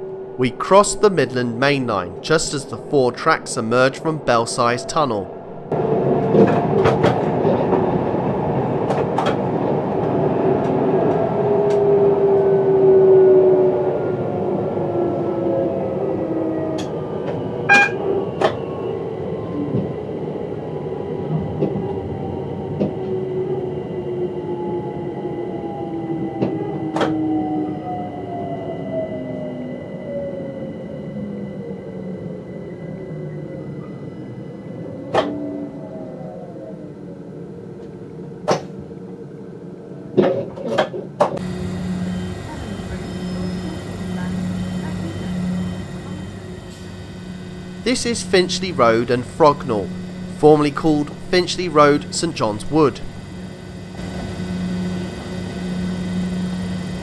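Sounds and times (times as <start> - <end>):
train motor whine: 16.8 - 18.6, 41.4 - 57.0.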